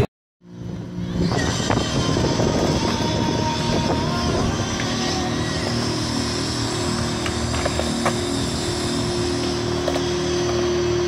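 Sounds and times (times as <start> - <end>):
steady background hum: 0.4 - 11.0
skateboard wheels rolling on concrete: 0.7 - 11.0.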